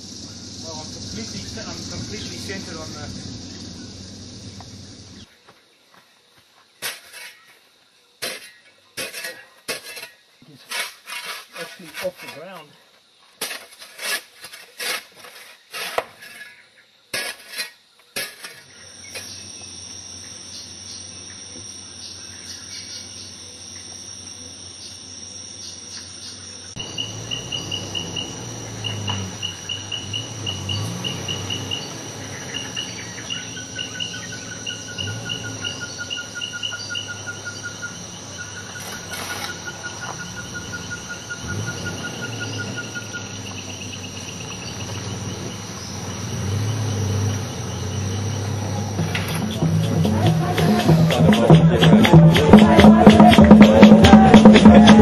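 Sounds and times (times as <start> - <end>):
low wavering rumble: 0.0 - 5.3
pulsing insect trills: 0.0 - 5.4, 17.6 - 55.0
insects buzzing: 0.0 - 55.0.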